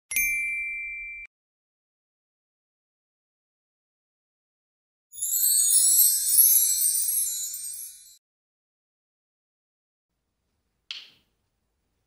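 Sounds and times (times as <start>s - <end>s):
bright bell ding: 0.1s - 1.3s.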